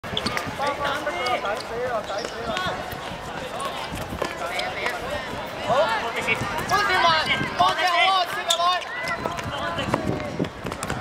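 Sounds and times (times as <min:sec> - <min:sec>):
young voices shouting: 0:04.7 - 0:10.1.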